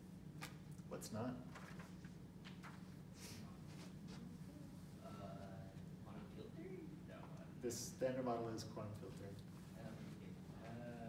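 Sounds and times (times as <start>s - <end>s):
lecture room hum: 0.0s - 11.0s
faint drawn-out voice: 3.4s - 7.1s.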